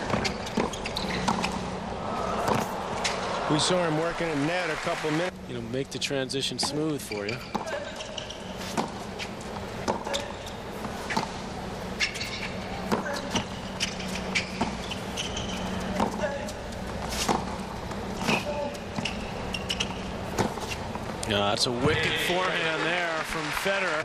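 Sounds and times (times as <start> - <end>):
shoes squeaking on court: 0.0 - 3.3, 6.5 - 21.2
racket striking tennis ball: 2.4 - 3.3, 8.6 - 11.3, 12.0 - 14.0.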